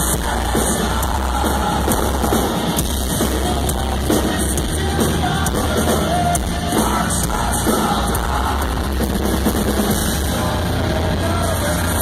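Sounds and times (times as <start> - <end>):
drum kit: 0.0 - 12.0
loud metal band playing: 0.0 - 12.0.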